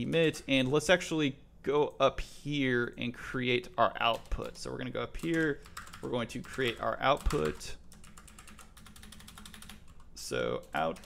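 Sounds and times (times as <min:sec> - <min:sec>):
fast keyboard typing: 0:04.1 - 0:11.0.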